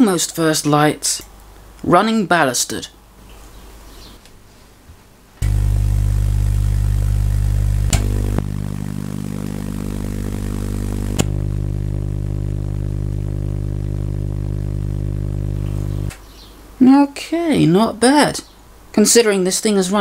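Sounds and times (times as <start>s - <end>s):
tesla coil spark buzzing: 5.4s - 16.2s.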